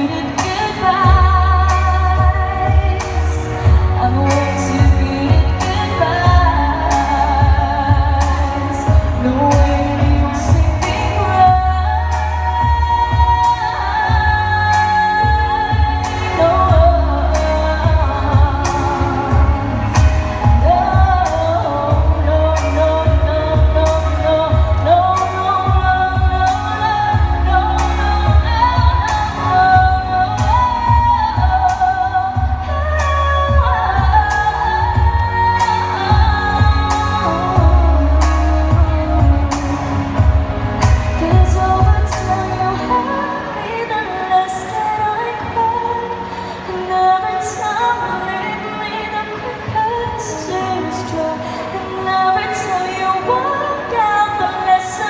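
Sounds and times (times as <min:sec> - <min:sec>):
backing music with heavy bass: 0:00.0 - 0:55.0
woman singing into microphone: 0:00.0 - 0:55.0.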